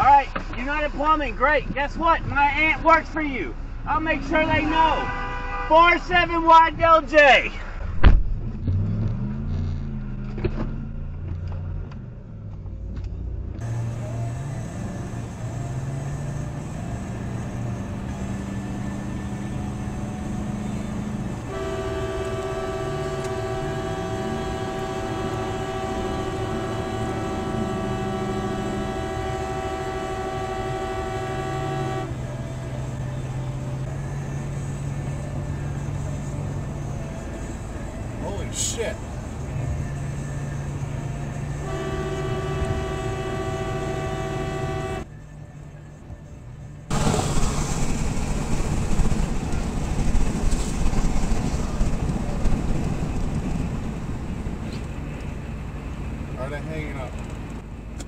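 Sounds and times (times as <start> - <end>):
road noise: 0.0 - 58.0
car horn blast: 4.8 - 6.0, 21.4 - 32.8, 41.3 - 45.1
wind rumble: 46.9 - 56.4.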